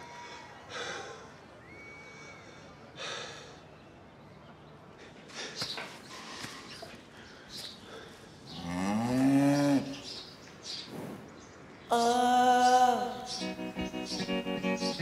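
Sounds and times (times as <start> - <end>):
cow mooing: 8.6 - 10.0.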